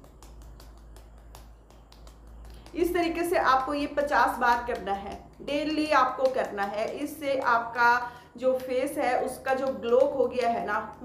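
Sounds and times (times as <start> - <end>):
hands patting face: 0.0 - 11.0.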